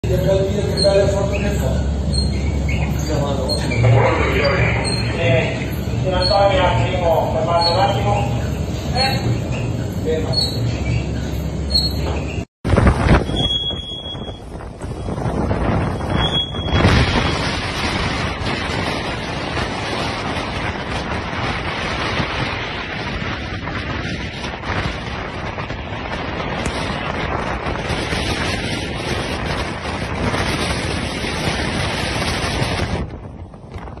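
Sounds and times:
choppy water: 0:00.0 - 0:34.0
wind buffeting microphone: 0:00.0 - 0:34.0
high squeaks: 0:00.5 - 0:12.5, 0:16.0 - 0:16.9.

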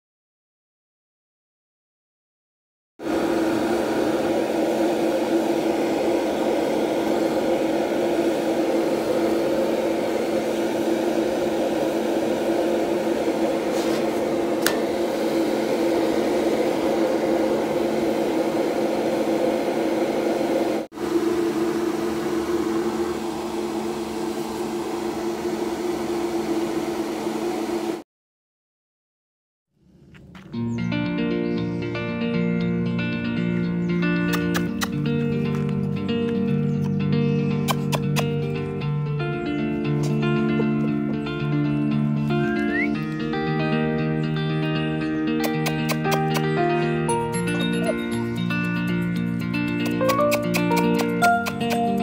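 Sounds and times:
electric fan humming: 0:03.0 - 0:28.0, 0:33.0 - 0:52.0.

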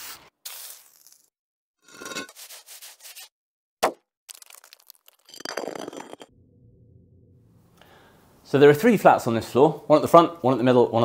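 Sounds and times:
scraping and rubbing: 0:01.9 - 0:03.3.

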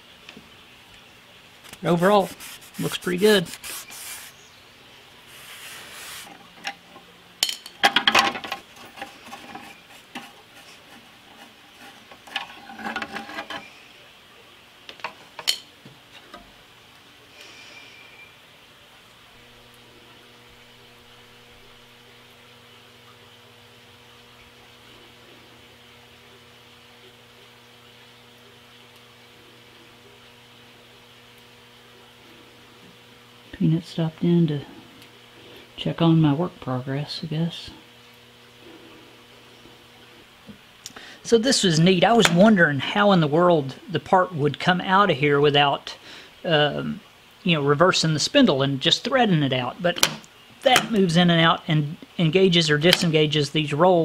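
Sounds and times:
rag wiping steel table: 0:01.7 - 0:04.4, 0:05.3 - 0:06.6, 0:08.7 - 0:13.7.

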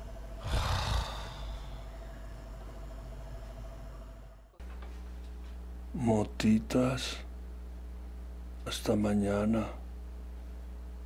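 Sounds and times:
man sighing heavily: 0:00.4 - 0:01.9.

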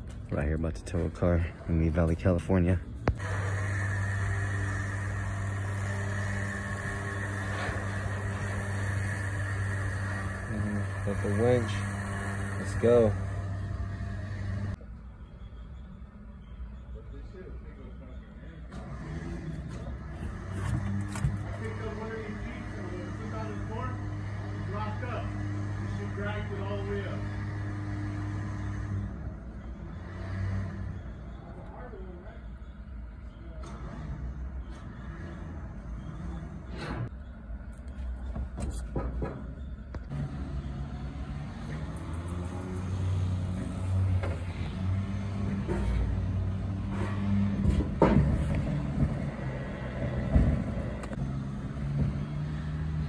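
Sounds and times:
electric winch humming: 0:03.2 - 0:37.5, 0:39.6 - 0:53.0.

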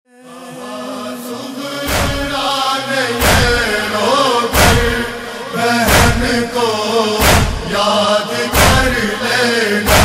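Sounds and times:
voices chanting a lament: 0:00.1 - 0:10.0
chest-beating thumps: 0:01.9 - 0:02.4, 0:03.2 - 0:03.8, 0:04.5 - 0:05.1, 0:05.9 - 0:06.5, 0:07.2 - 0:07.7, 0:08.5 - 0:09.0.

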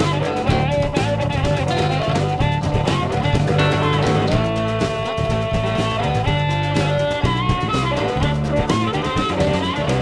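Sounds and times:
harmonica lines: 0:00.0 - 0:10.0
live blues band playing: 0:00.0 - 0:10.0.

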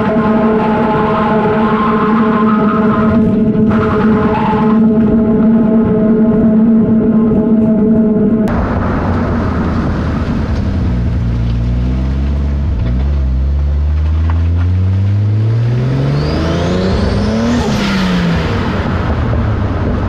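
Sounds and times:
car engine revving under load: 0:00.0 - 0:20.0.

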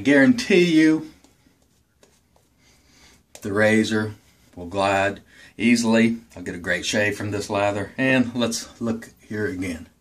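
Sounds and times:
shaving brush swishing lather: 0:00.0 - 0:05.2.

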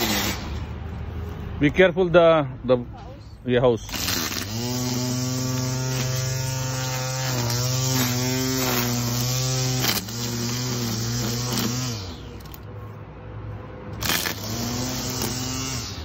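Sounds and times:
electric string trimmer cutting grass: 0:00.0 - 0:00.7, 0:03.8 - 0:12.7, 0:13.9 - 0:16.0.

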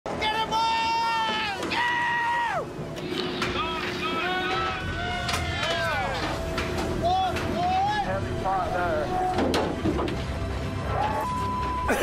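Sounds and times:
people shouting and hollering: 0:00.1 - 0:02.8, 0:03.6 - 0:06.4
machine drone: 0:00.1 - 0:12.0.

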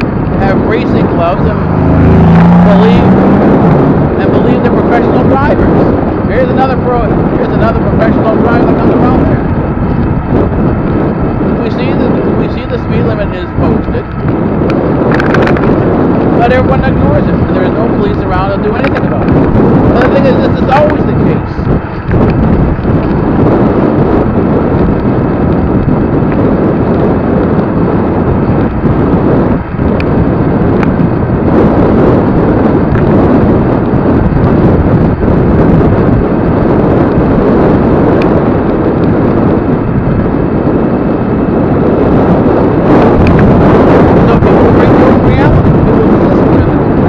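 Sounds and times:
road and traffic noise: 0:00.0 - 0:47.0
wind rush on microphone: 0:00.0 - 0:47.0.

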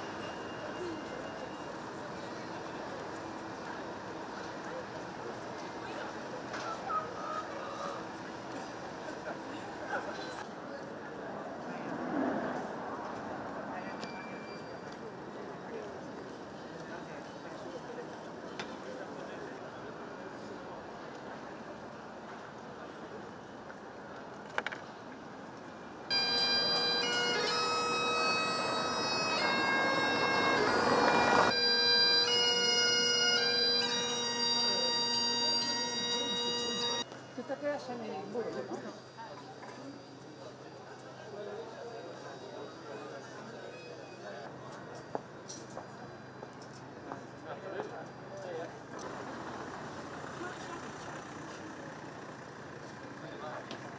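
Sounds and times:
low street noise: 0:00.0 - 0:53.9
bagpipe playing: 0:26.1 - 0:37.1.

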